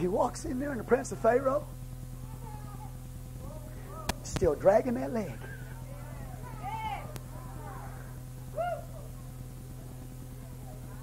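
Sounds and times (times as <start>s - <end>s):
steady low hum: 0.0s - 11.0s
person hooting: 6.4s - 9.2s.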